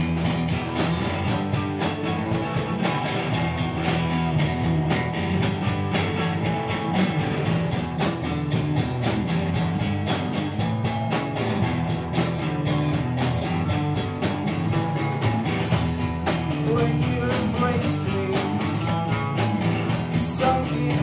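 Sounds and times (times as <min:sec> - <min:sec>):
drum strikes: 0:00.0 - 0:21.0
rock band with electric guitars: 0:00.0 - 0:21.0.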